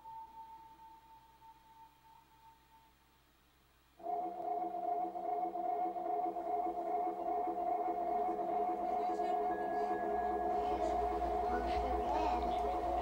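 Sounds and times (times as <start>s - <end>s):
sustained chord: 4.0s - 13.0s.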